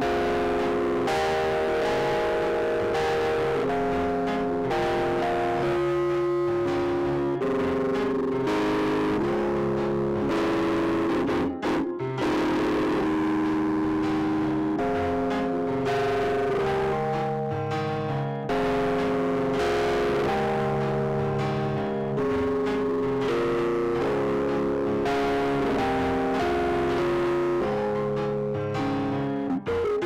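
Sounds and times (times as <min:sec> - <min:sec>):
electronic keyboard chords: 0:00.0 - 0:30.0.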